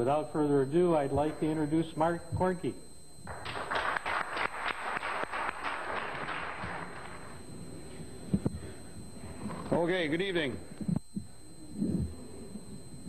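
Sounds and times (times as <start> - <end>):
audience applauding: 3.3 - 7.4.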